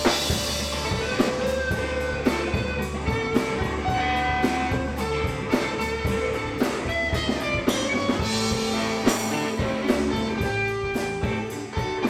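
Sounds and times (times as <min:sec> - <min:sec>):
bass guitar: 0:00.0 - 0:12.0
drum kit: 0:00.0 - 0:12.0
electric guitars: 0:00.0 - 0:12.0.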